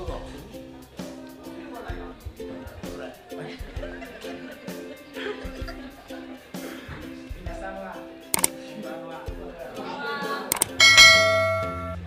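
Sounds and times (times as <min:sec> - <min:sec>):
mouse clicks: 0:10.5 - 0:10.8
bright bell ding: 0:10.5 - 0:12.0.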